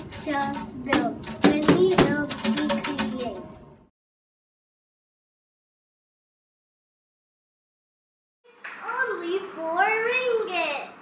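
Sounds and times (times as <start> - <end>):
paper shaker rattling: 0.0 - 3.6
child singing: 0.2 - 3.4.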